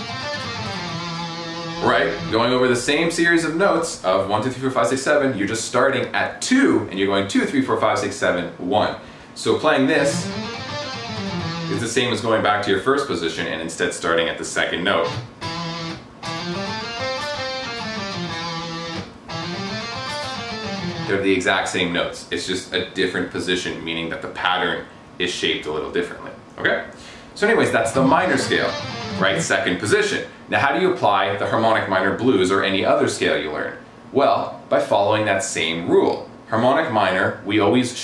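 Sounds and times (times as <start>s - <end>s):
electric guitar single notes picked: 0.0s - 2.5s, 10.0s - 11.8s, 15.0s - 21.1s, 27.8s - 29.7s.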